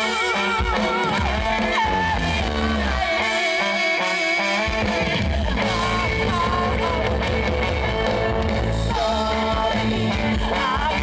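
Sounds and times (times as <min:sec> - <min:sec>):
heavy bass: 0:00.0 - 0:03.4, 0:04.6 - 0:11.0
electric guitars: 0:00.0 - 0:11.0
live band playing: 0:00.0 - 0:11.0
person singing: 0:00.0 - 0:11.0.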